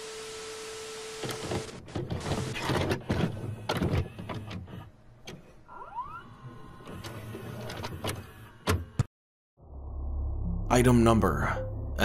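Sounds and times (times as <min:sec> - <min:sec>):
videotape player motor whir: 0:05.7 - 0:08.9
low hum: 0:09.6 - 0:12.0.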